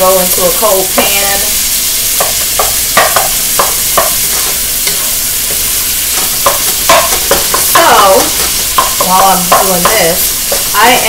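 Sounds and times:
chicken sizzling in oil: 0:00.0 - 0:11.0
spatula scraping and knocking pan: 0:01.8 - 0:11.0.

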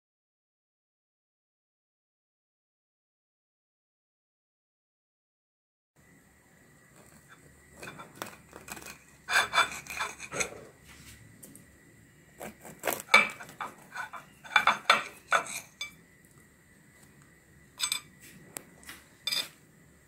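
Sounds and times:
cutlery scraping a ceramic plate: 0:07.0 - 0:10.7, 0:12.4 - 0:16.0, 0:17.8 - 0:18.1, 0:19.2 - 0:19.6
serrated knife sawing through donut: 0:07.8 - 0:10.6, 0:12.4 - 0:15.8.

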